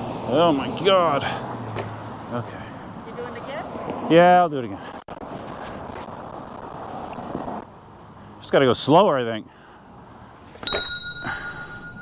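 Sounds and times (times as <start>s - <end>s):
bright metallic ding: 10.6s - 12.0s.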